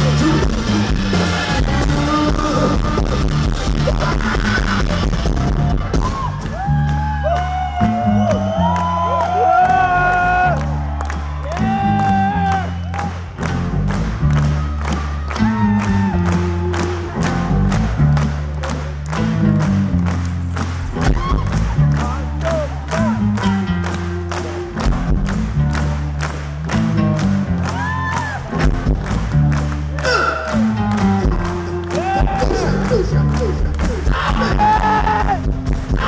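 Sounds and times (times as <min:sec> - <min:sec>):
live soul band playing: 0:00.0 - 0:06.3, 0:12.9 - 0:36.0.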